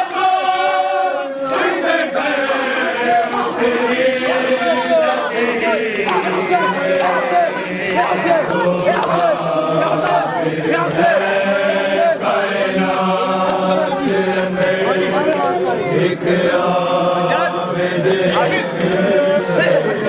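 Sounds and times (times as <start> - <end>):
men chanting together: 0.0 - 20.0
hands slapping chests: 0.4 - 15.7, 18.1 - 20.0.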